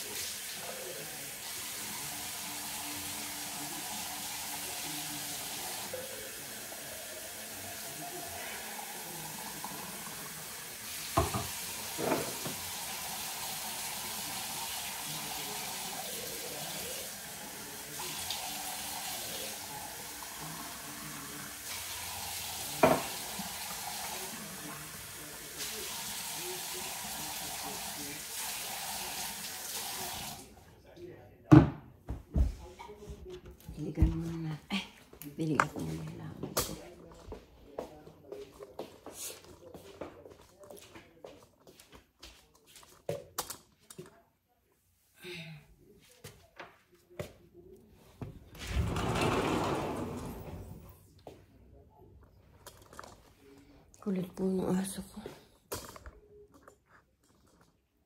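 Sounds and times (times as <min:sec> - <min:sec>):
tap running into sink: 0:11.0 - 0:13.0, 0:21.7 - 0:24.2
dishware knocking: 0:11.2 - 0:12.6.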